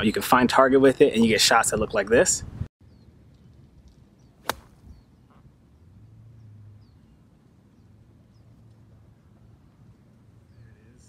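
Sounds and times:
golf club striking ball: 0:04.4 - 0:04.8.

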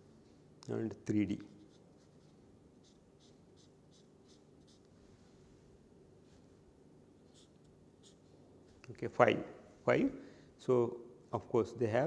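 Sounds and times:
marker strokes on paper: 0:01.3 - 0:05.1, 0:07.2 - 0:08.8.

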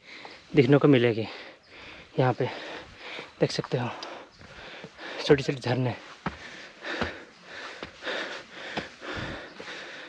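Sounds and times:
person breathing hard: 0:01.3 - 0:05.3, 0:06.1 - 0:10.0
footfalls on stone: 0:06.2 - 0:09.4.

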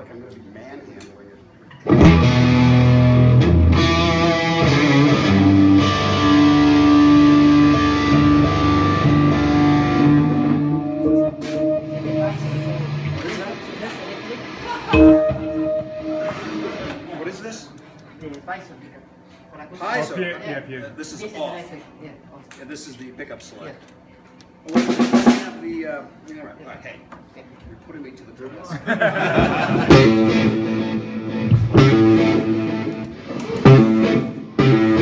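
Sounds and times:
electric guitar through amplifier: 0:01.8 - 0:17.3, 0:29.4 - 0:35.0.

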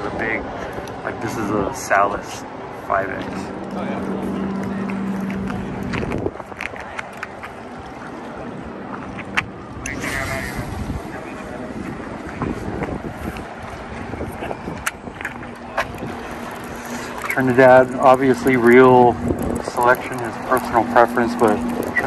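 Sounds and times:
wind: 0:00.0 - 0:22.0
low steady hum: 0:01.2 - 0:12.4, 0:13.6 - 0:22.0
fishing line whirring off spool: 0:15.4 - 0:22.0.

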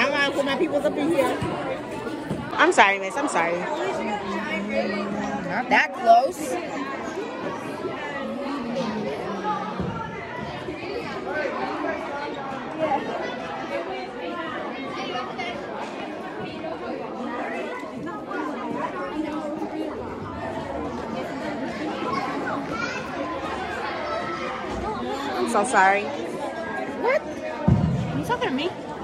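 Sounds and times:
chatter of many people: 0:00.0 - 0:29.0.

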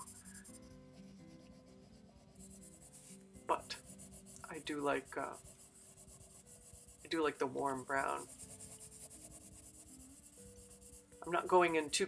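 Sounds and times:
colored pencil scratching on paper: 0:00.0 - 0:12.0
quiet background music: 0:00.0 - 0:12.0.

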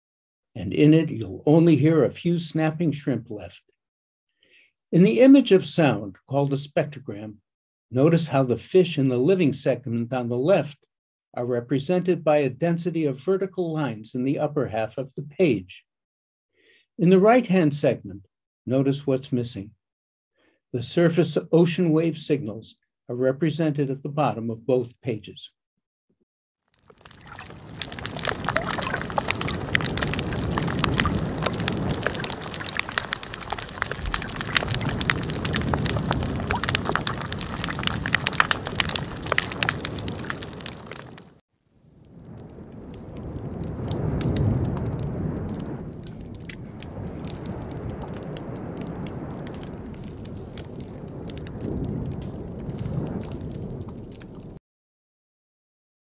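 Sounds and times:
crackle of fish calls and clicks: 0:26.7 - 0:54.6
low wash of waves underwater: 0:27.0 - 0:41.2, 0:42.0 - 0:54.6.

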